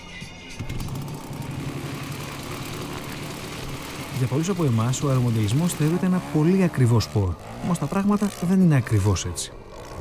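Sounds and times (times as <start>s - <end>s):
model airplane engine idling: 0.6s - 10.0s.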